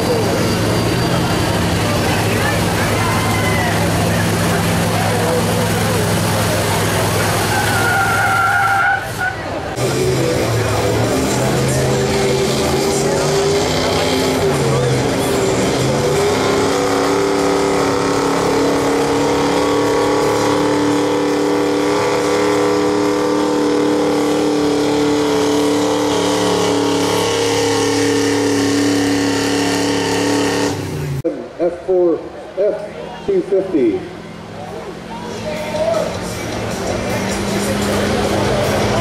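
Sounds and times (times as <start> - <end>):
engine at full throttle: 0.0 - 8.2, 9.6 - 31.3, 33.6 - 39.0.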